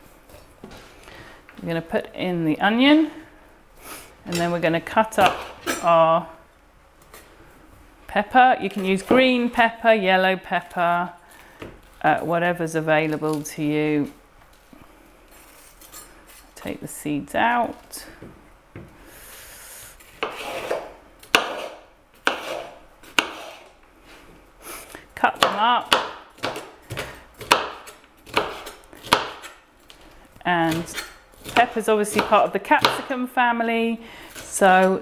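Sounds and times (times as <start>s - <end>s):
knife slicing pepper: 20.2s - 23.7s, 25.4s - 29.6s.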